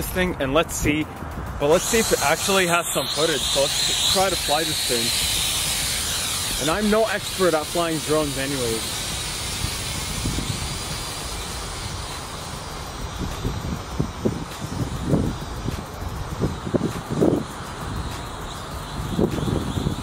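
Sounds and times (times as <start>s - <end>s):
drone propellers buzzing: 0.8s - 20.0s
wind rumble on microphone: 9.0s - 12.2s, 12.8s - 20.0s.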